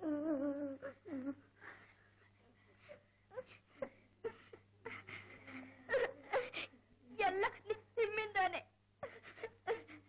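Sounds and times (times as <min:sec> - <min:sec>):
girl crying: 0:09.0 - 0:10.0.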